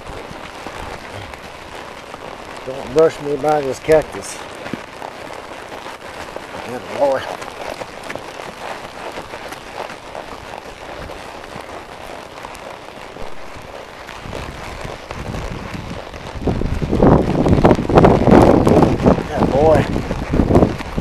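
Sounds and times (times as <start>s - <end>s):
wind on microphone: 0.0s - 1.8s, 13.1s - 21.0s
horse hooves on gravel: 0.0s - 21.0s.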